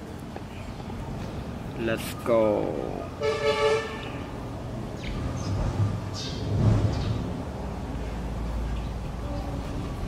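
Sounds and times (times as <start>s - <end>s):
horn toot: 3.2s - 4.2s.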